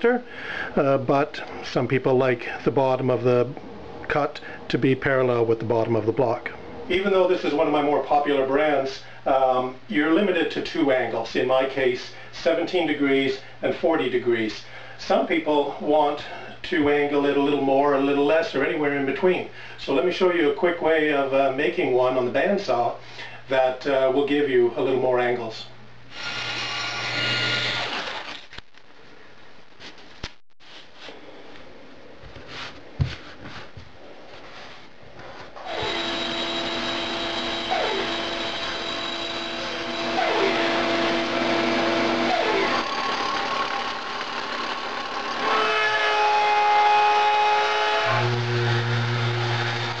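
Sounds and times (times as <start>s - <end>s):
bandsaw cutting wood: 26.1s - 28.4s, 35.6s - 50.0s
orbit sander humming: 35.6s - 50.0s.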